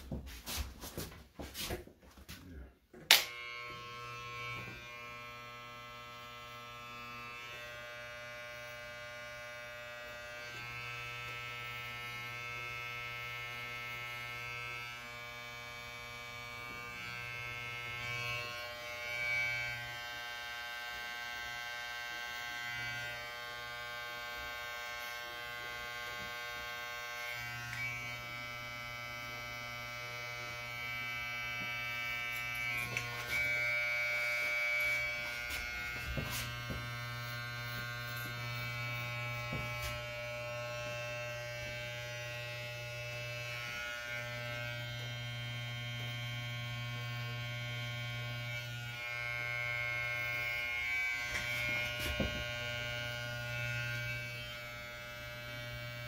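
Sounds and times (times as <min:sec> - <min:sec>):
electric hair clippers buzzing: 0:02.9 - 0:56.0.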